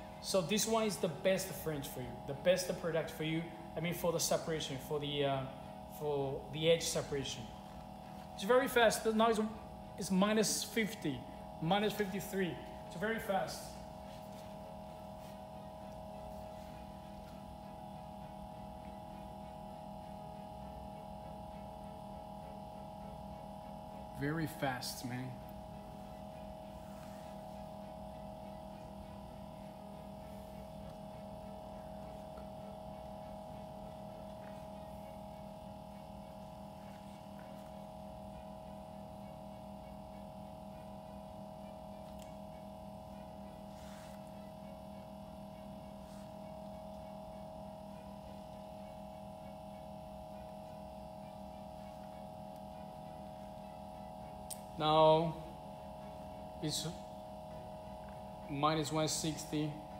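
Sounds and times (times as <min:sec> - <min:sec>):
freezer humming: 0:00.0 - 0:59.9.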